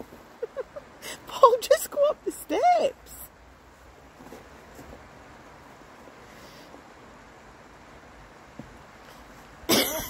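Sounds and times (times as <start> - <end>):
loud cough: 9.7 - 10.0.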